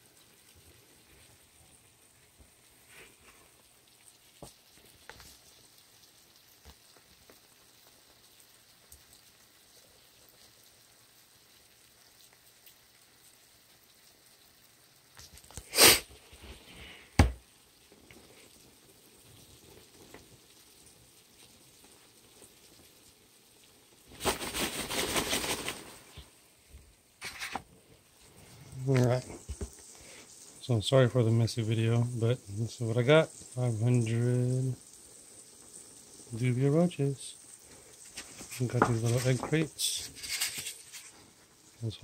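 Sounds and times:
sharp knock on plastic tub: 0:17.2 - 0:17.4
paper rustling: 0:24.1 - 0:26.3, 0:27.2 - 0:27.6, 0:38.2 - 0:41.1.

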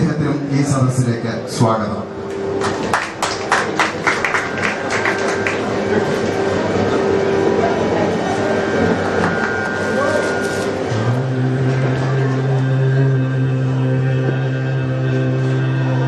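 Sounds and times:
hubbub of voices: 0:00.0 - 0:16.0
low drone note: 0:00.0 - 0:16.0
hand claps: 0:02.3 - 0:06.3
steady held note: 0:04.4 - 0:16.0.

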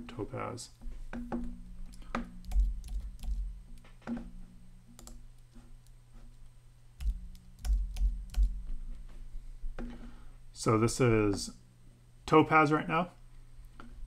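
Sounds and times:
steady low hum: 0:00.0 - 0:14.0
computer keyboard and mouse clicks: 0:01.8 - 0:03.5, 0:05.0 - 0:05.2, 0:07.0 - 0:08.6.

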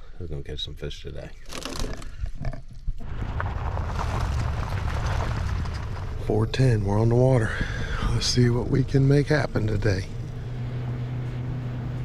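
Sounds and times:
wind: 0:00.0 - 0:12.0
boat motor rumble: 0:06.1 - 0:12.0.

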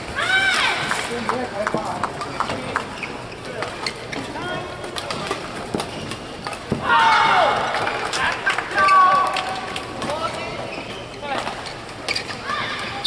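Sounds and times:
shoes squeaking on court: 0:01.7 - 0:06.8, 0:10.1 - 0:13.0.

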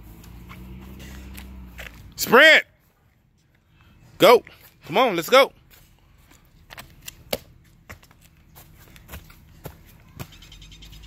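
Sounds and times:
sneaker knocks and scuffs: 0:05.7 - 0:10.6.

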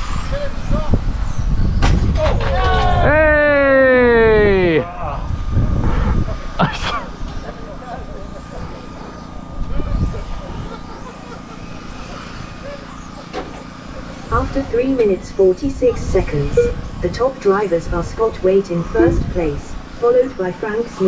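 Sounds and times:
electric rc car motor whining: 0:00.0 - 0:01.8, 0:02.8 - 0:21.0
cars whining around track: 0:00.0 - 0:21.0.

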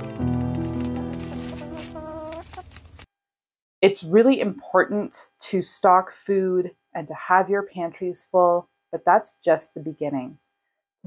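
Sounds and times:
soft instrumental music: 0:00.0 - 0:02.6
hen clucking: 0:01.1 - 0:02.8.

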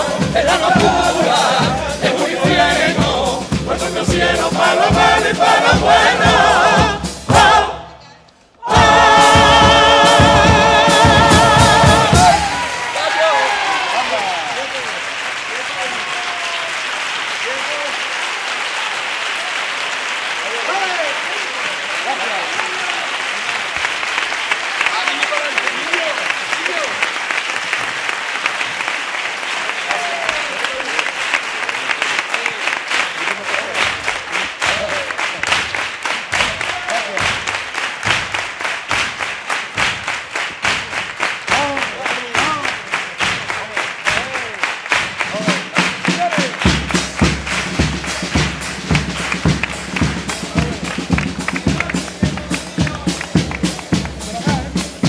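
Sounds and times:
audience applauding: 0:00.0 - 0:03.5, 0:08.6 - 0:55.0
rhythmic clapping in unison: 0:00.0 - 0:07.9, 0:08.6 - 0:55.0
crowd shouts: 0:11.8 - 0:14.9, 0:15.5 - 0:16.8.

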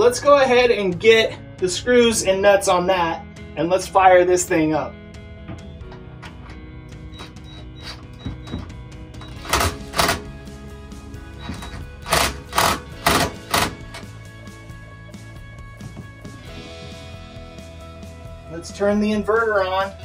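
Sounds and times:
background music: 0:00.0 - 0:20.0
nuts and screws being tightened: 0:05.5 - 0:10.3, 0:11.4 - 0:14.2.

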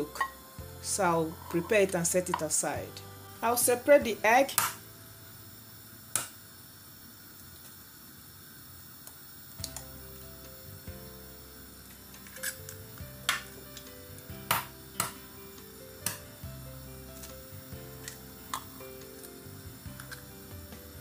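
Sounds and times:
background music: 0:00.0 - 0:05.9, 0:09.6 - 0:21.0.

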